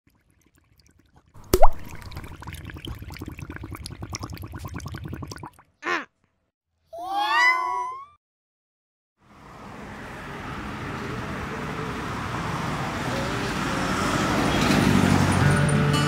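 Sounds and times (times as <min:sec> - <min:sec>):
liquid plop: 0:00.1 - 0:05.7
bubbly blip: 0:01.4 - 0:05.6.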